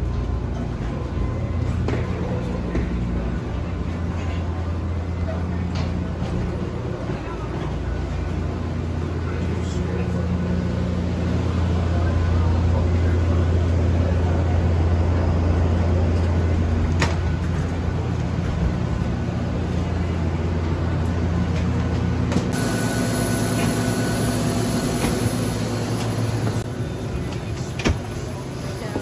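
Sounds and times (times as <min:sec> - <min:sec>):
low aircraft drone: 0:00.0 - 0:29.0.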